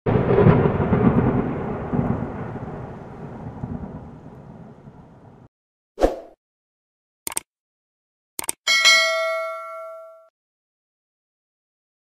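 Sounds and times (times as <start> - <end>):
low thunder-like rumble: 0.1 - 5.5.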